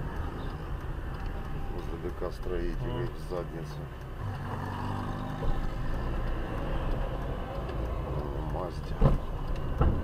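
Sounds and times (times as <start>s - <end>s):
car engine and road noise: 0.0s - 10.0s.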